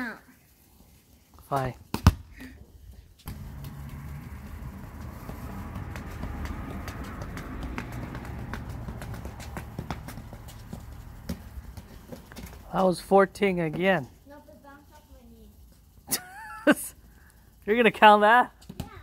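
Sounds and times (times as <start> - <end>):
soccer ball thumps on foot: 1.9 - 2.4, 3.2 - 12.8
steady low rumble: 3.0 - 11.8.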